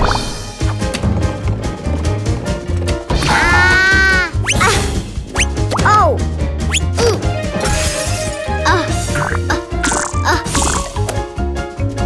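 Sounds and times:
cartoon music with bass line: 0.0 - 12.0.

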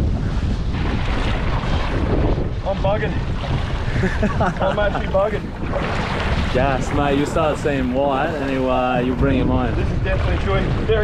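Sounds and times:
sea water sloshing against boat: 0.0 - 11.0
wind buffeting microphone: 0.0 - 11.0.

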